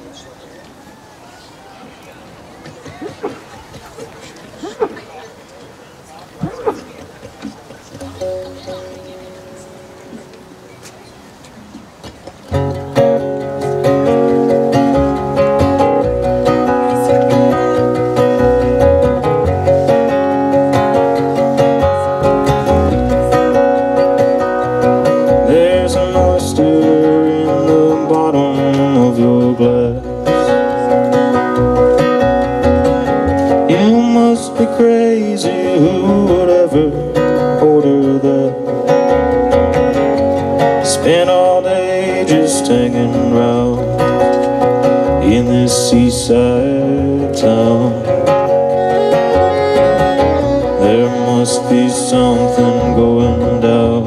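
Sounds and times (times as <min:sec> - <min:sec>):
mandolin: 0:01.9 - 0:54.0
strummed acoustic guitars: 0:06.3 - 0:54.0
upright bass: 0:11.9 - 0:54.0
people singing: 0:49.0 - 0:54.0.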